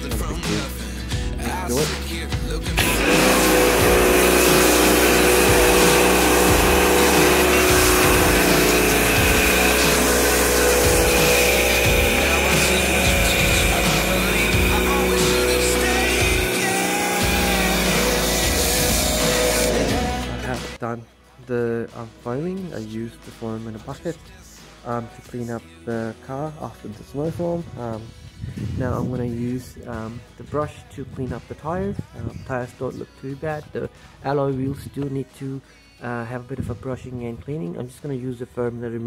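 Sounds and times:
spray hissing: 2.8 - 20.7
pressure washer motor whine: 2.8 - 20.8.

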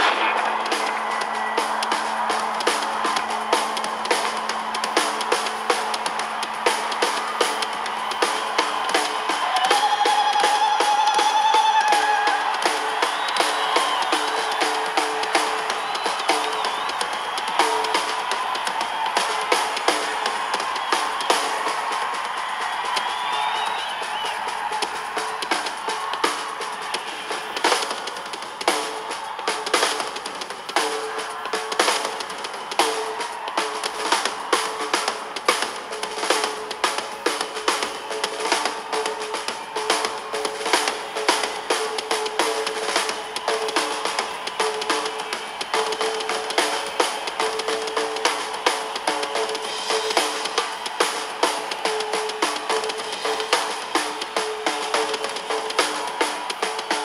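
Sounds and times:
live rock drumming: 0.0 - 57.0.

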